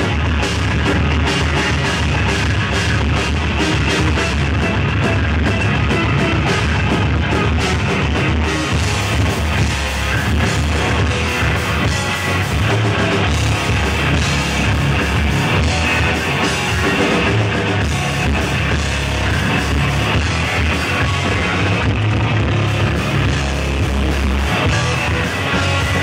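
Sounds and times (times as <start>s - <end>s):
bass guitar: 0.0s - 26.0s
drum kit: 0.0s - 26.0s
electric guitars: 0.0s - 26.0s.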